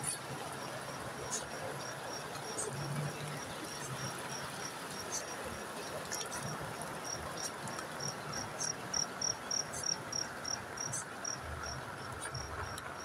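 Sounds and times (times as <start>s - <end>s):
rain hiss: 0.0s - 13.0s
insect chirping: 0.4s - 13.0s.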